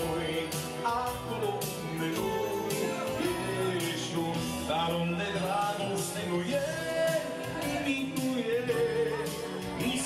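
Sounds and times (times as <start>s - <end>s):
party band melody: 0.0s - 10.0s.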